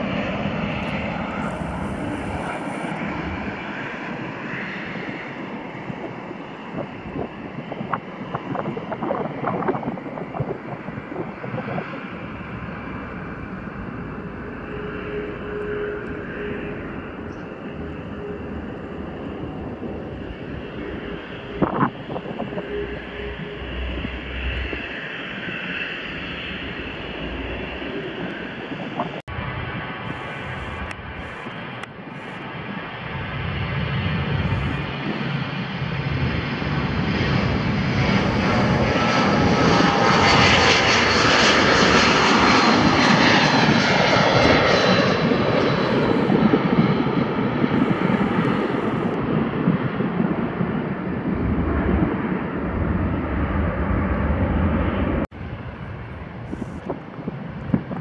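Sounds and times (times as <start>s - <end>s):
jet airliner taking off: 0.0s - 58.0s
jet running quietly on runway: 0.0s - 58.0s
whining jet engine tone: 0.0s - 58.0s.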